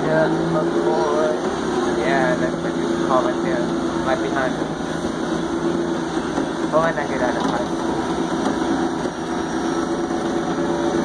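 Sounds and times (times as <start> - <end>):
bus engine humming: 0.0 - 11.0.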